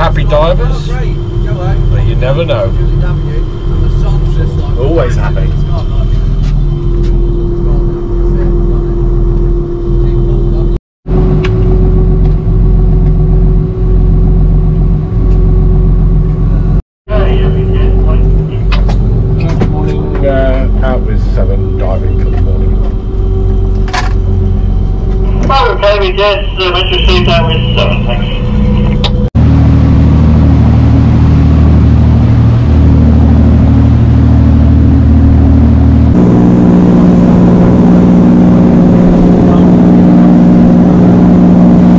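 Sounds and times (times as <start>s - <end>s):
boat engine running: 0.0s - 41.9s.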